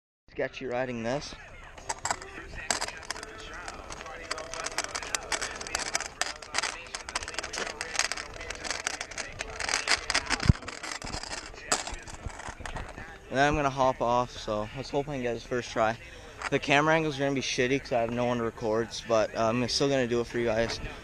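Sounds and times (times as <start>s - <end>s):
kick scooter rattling on pavement: 1.9s - 13.2s.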